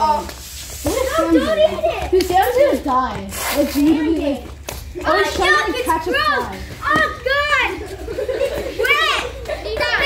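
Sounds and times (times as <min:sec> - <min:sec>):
boys shouting and yelling: 0:00.9 - 0:10.0.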